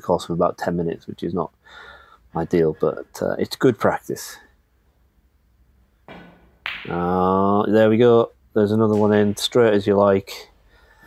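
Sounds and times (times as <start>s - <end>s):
snooker balls clicking: 6.1s - 7.2s.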